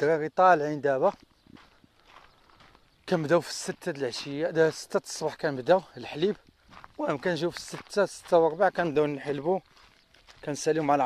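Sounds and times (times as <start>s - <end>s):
footsteps on gravel: 0.4s - 11.0s.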